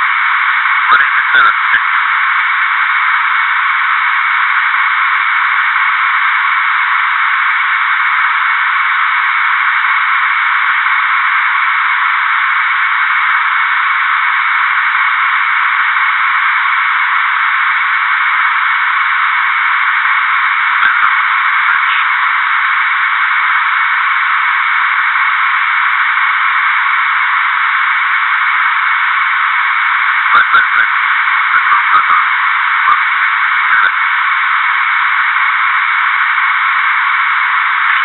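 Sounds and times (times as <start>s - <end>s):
steady radio-like hiss: 0.0s - 38.0s.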